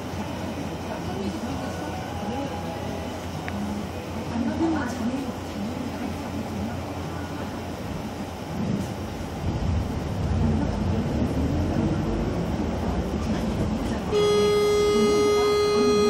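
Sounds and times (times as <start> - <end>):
faint voices: 0.0 - 9.1, 10.2 - 16.0
loud steady pitched tone: 14.1 - 16.0.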